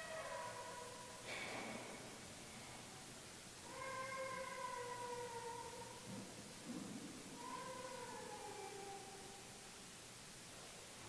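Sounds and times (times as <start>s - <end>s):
high-pitched voice wailing: 3.7s - 5.6s, 7.4s - 9.2s.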